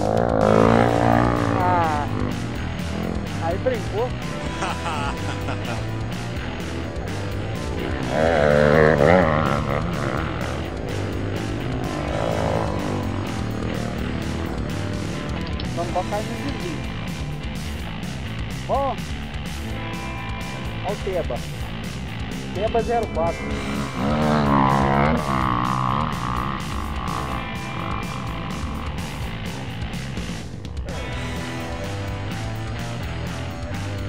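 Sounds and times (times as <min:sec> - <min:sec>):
dirt bike engines revving: 0:00.0 - 0:34.0
music: 0:00.0 - 0:34.0.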